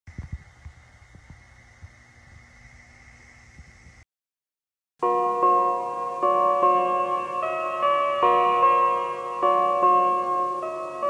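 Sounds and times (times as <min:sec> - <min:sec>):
tape hiss: 0:00.1 - 0:04.0, 0:05.0 - 0:11.0
thin high whine: 0:00.1 - 0:04.0.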